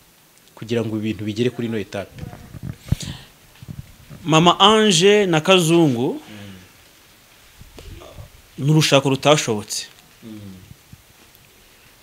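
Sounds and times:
microphone handling bumps: 0:02.0 - 0:04.8, 0:07.6 - 0:08.4.

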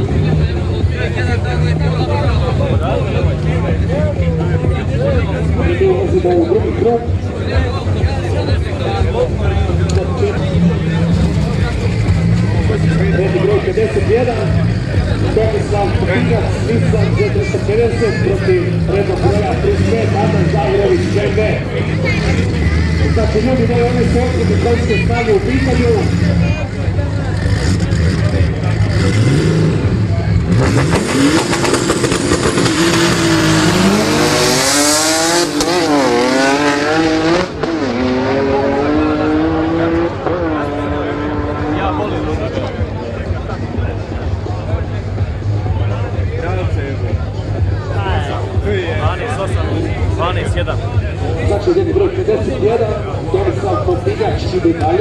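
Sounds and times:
drag cars revving hard: 0:00.0 - 0:55.0.

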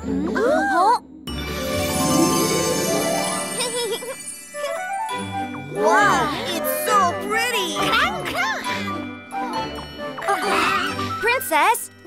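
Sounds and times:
cartoon background music: 0:00.0 - 0:12.0.

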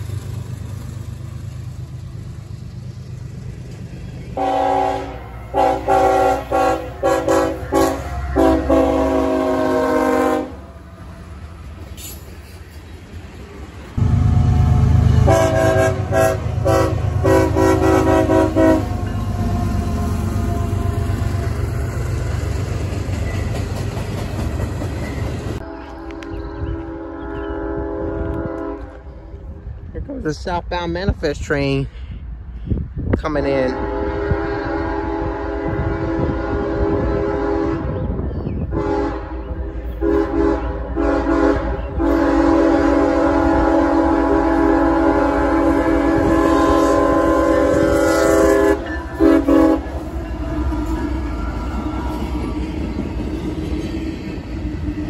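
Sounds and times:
train rumbling by: 0:00.0 - 0:55.0
locomotive air horn blasts: 0:04.4 - 0:10.7, 0:14.0 - 0:19.6, 0:25.6 - 0:29.1, 0:33.7 - 0:38.0, 0:38.7 - 0:51.2.

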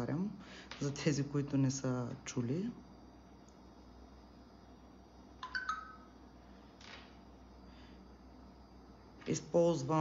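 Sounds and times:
short ringing tones: 0:05.4 - 0:06.2.

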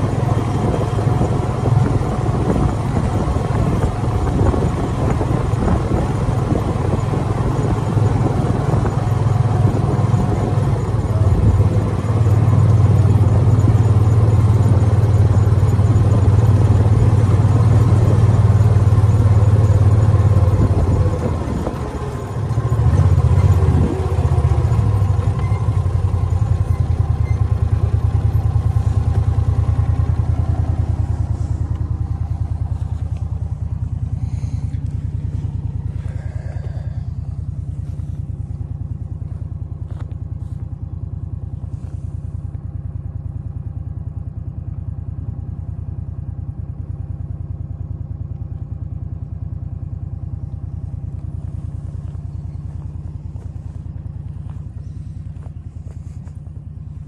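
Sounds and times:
utility vehicle engine running: 0:00.0 - 0:57.0.

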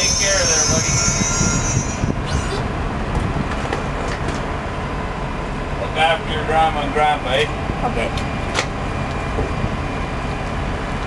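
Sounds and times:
brief high squeak: 0:00.0 - 0:02.6
high wheel squeal: 0:00.0 - 0:02.7
train wheels rumbling on rails: 0:00.0 - 0:11.0.

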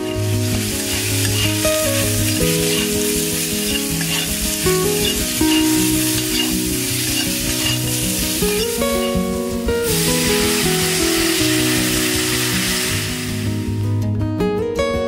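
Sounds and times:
food sizzling in oil: 0:00.0 - 0:13.9
soft background music: 0:00.0 - 0:15.0.

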